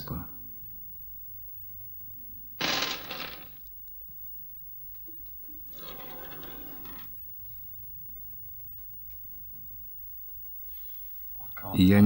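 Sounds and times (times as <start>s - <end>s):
stones clicking on wooden table: 2.6s - 3.6s.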